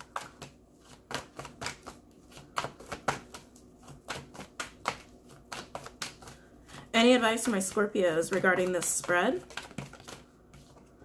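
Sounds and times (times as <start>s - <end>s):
cards being shuffled: 7.4s - 10.9s.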